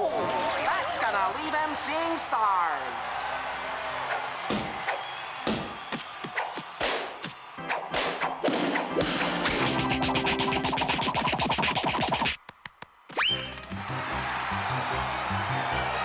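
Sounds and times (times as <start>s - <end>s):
cartoon whacks and thuds: 5.5s - 9.7s
background music: 6.8s - 12.2s, 13.2s - 16.0s.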